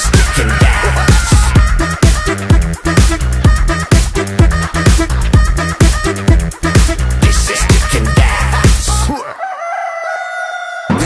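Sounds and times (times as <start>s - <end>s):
dance beat: 0.0s - 9.1s
rooster crowing: 9.1s - 11.0s.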